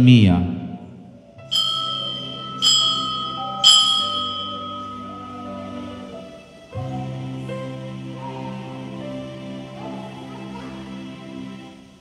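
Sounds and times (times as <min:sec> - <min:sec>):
altar bell ringing: 0:01.4 - 0:06.7.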